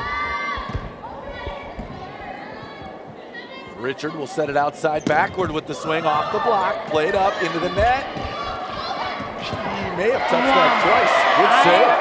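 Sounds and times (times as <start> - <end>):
crowd noise: 0.0 - 12.0
commentator speaking: 9.7 - 12.0.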